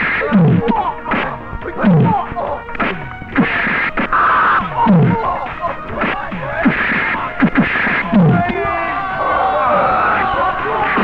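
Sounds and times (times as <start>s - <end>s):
background music: 0.0s - 11.0s
punch whacks: 2.8s - 4.1s
shouts and grunts: 8.0s - 11.0s.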